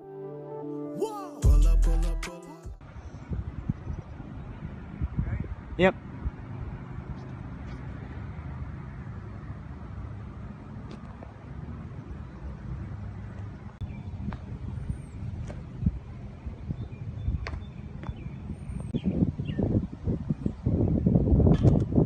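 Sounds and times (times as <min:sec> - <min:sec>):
wind buffeting microphone: 0:02.8 - 0:07.6, 0:13.7 - 0:22.0.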